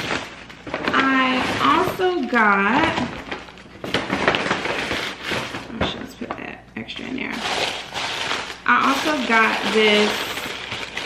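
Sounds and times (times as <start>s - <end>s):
paper bag rustling: 0.0s - 6.3s, 7.2s - 11.0s.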